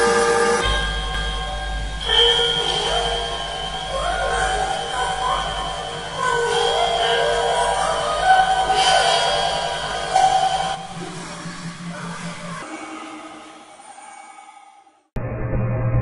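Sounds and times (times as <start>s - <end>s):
electronic held tones with pitch glides: 0.0s - 12.6s
low hum: 0.0s - 12.6s.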